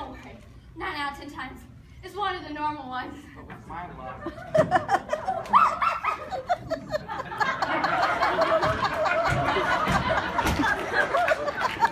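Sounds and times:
audience laughter: 4.2s - 11.9s.

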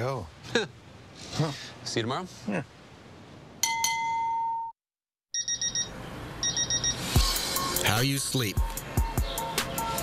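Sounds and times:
digital alarm clock beeping: 5.3s - 8.1s
background music with low beats: 7.2s - 10.0s.

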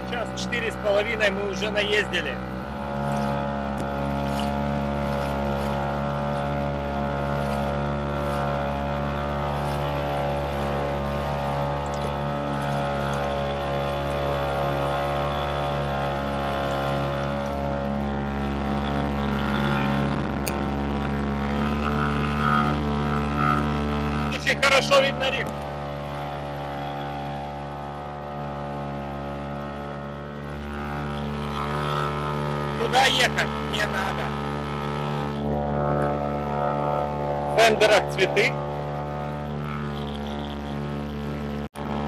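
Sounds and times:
outboard motor humming: 0.0s - 42.0s.

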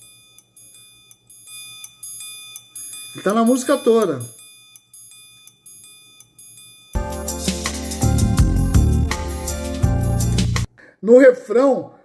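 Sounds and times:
triangle strikes ringing: 0.0s - 7.5s.

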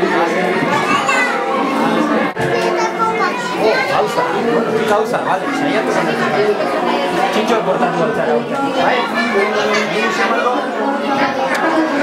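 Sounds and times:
adult chatter: 0.0s - 12.0s
children's voices: 0.0s - 12.0s.

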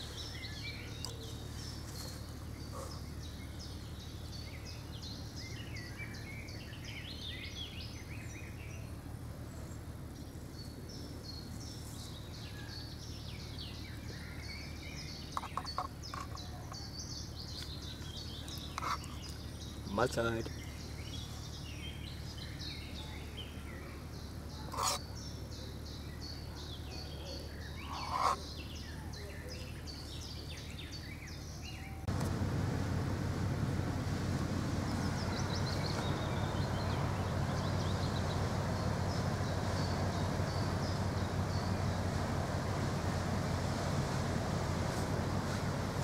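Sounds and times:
small birds chirping: 0.0s - 32.1s, 33.7s - 46.0s
louder bird calls: 24.6s - 25.2s, 27.2s - 29.0s
steady outdoor rush: 32.1s - 46.0s.

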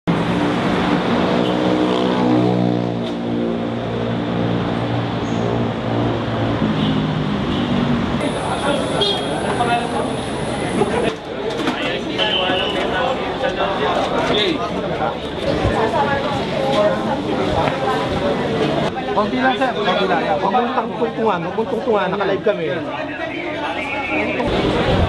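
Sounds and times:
city traffic noise: 0.0s - 25.0s
people talking: 8.2s - 25.0s.

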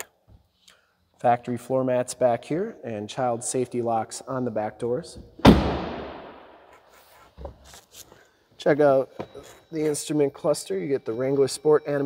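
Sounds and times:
car door slammed shut: 5.4s - 6.4s.

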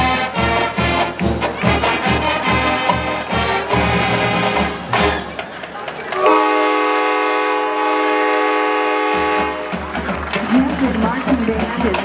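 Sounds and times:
brass band sustained chord: 0.0s - 5.4s, 6.2s - 9.8s.

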